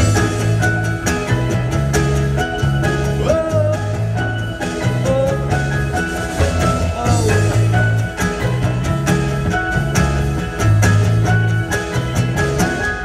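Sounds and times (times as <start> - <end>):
acoustic guitar: 0.0 - 13.0
electric guitar: 0.0 - 13.0
held bass notes: 0.0 - 13.0
keyboard: 0.0 - 13.0
regular percussive beat: 0.0 - 13.0.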